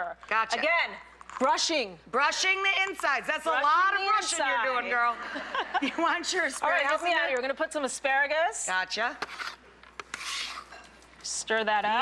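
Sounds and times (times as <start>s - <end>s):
utensil scraping in cooking pot: 9.1s - 11.1s.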